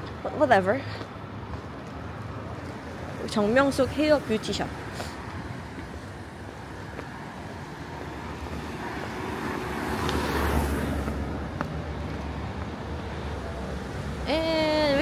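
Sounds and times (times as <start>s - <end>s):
street background noise: 0.0s - 15.0s
car passing by: 4.8s - 14.2s.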